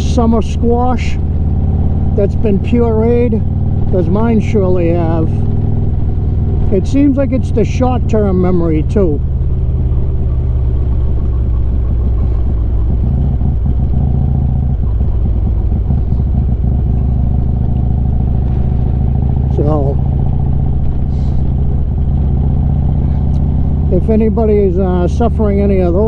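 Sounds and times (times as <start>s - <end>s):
motorcycle engine running: 0.0s - 26.0s
wind and road noise: 0.0s - 26.0s.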